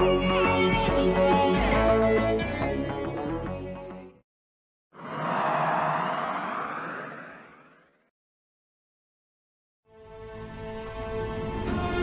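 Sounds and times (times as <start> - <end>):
whoosh with rising sweep: 5.0 - 8.0.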